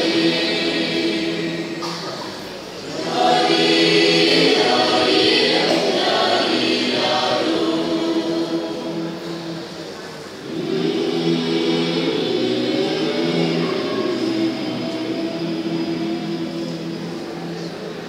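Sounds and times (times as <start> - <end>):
choir singing a carol: 0.0 - 18.0.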